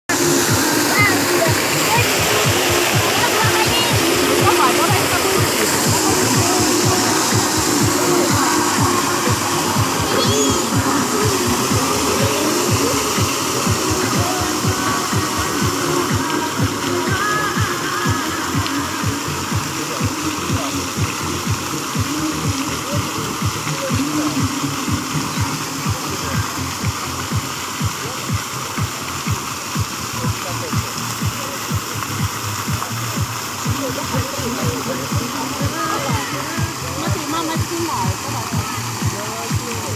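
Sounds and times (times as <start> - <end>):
fountain water splashing: 0.1 - 39.9
indistinct voices: 0.1 - 39.9
music with regular beat: 0.1 - 39.9.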